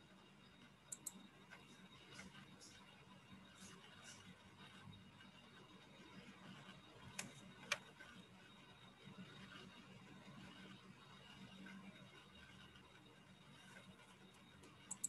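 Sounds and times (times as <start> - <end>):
sharp clicks: 0.9 - 1.2.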